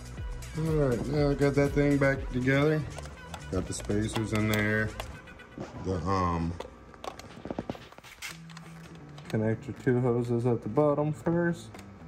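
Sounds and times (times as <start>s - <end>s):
person speaking: 0.5s - 6.8s.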